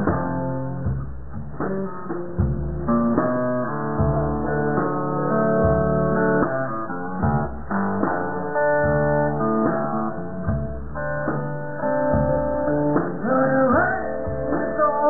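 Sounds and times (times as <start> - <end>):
blues guitar playing: 0.0 - 15.0.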